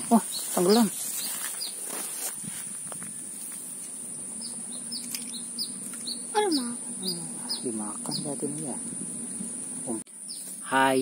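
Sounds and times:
high falling bird chirps: 0:00.0 - 0:11.0.

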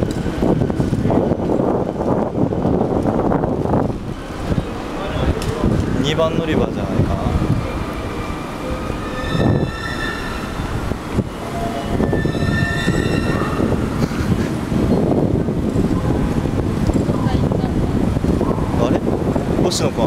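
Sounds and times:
busy station concourse noise: 0:00.0 - 0:20.0
held high-pitched tones: 0:07.7 - 0:14.1.

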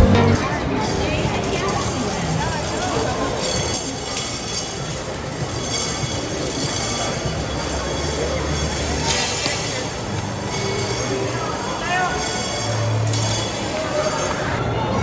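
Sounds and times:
steady background din: 0:00.0 - 0:15.0
train wheels squealing on track: 0:03.8 - 0:14.5.

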